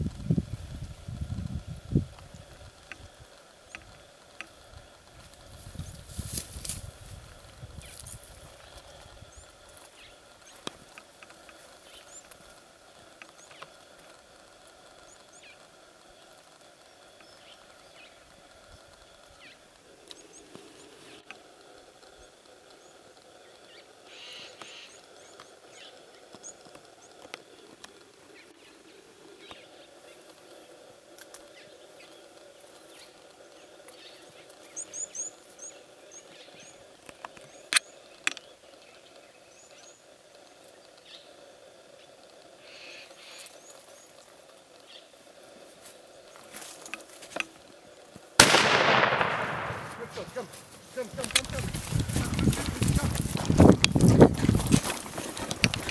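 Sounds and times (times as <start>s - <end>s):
loud rifle shot: 48.4s - 50.3s.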